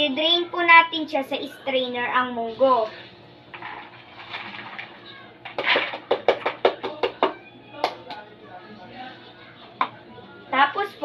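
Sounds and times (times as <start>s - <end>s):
beans and water pouring: 3.5s - 6.0s
strainer rattling shakes: 3.6s - 6.5s
knocks on plastic strainer: 5.5s - 7.4s.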